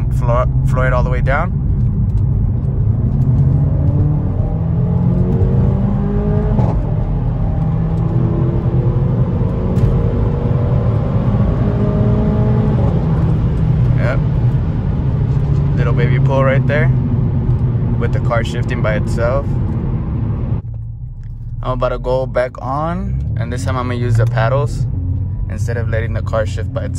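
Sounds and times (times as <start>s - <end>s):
car engine at full throttle: 0.0s - 26.9s.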